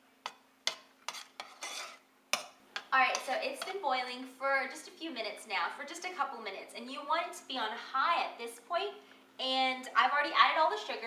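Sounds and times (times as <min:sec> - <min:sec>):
metal spoon scraping a pot: 0:00.2 - 0:03.7.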